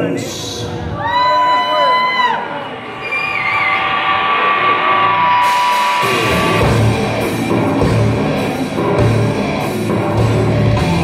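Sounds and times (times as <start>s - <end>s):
drums: 2.2s - 11.0s
keyboard drone: 3.7s - 11.0s
electric guitars: 3.8s - 11.0s.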